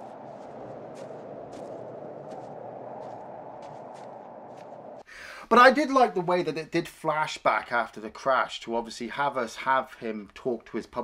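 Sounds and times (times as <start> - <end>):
footsteps crunching in snow: 0.0 - 5.0
blizzard wind blowing: 0.0 - 5.1.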